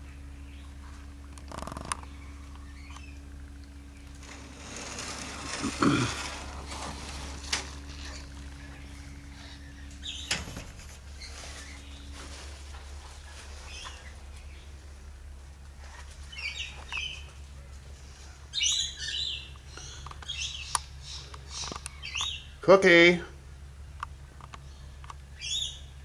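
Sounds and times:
birds chirping: 0.0s - 26.0s
steady low hum: 0.0s - 26.0s.

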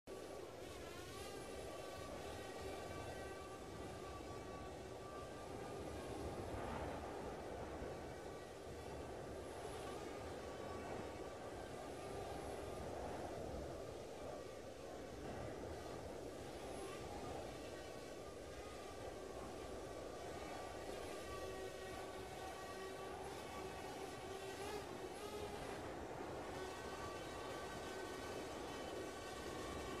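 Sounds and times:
drone propellers whining: 0.1s - 30.0s.

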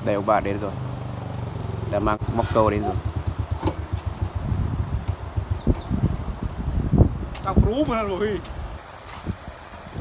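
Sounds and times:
motorcycle engine idling: 0.4s - 6.6s.

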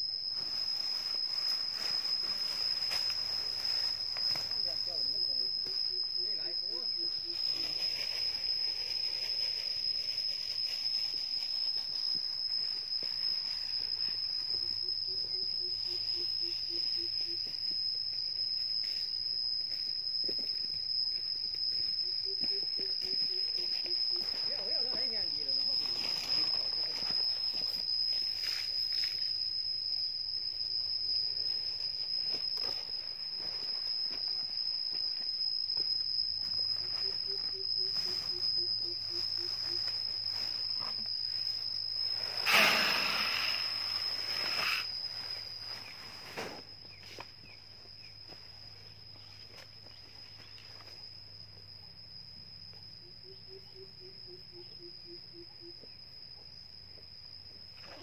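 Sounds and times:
insect whine: 0.0s - 58.0s
animal pulsed calls: 14.5s - 17.5s, 22.0s - 24.6s, 36.8s - 39.9s, 42.2s - 45.2s.

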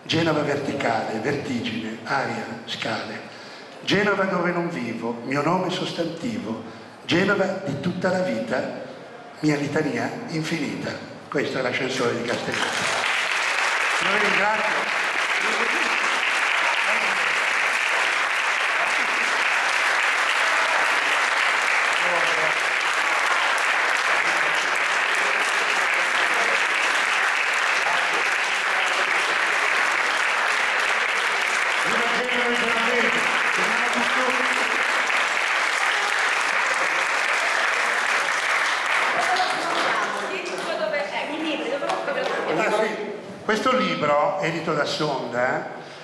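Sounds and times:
audience applauding: 12.2s - 42.6s.

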